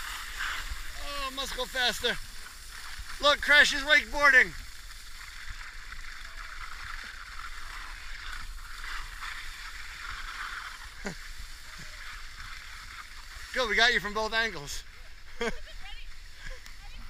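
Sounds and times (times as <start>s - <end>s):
skis hissing over slushy snow: 0.0s - 17.0s.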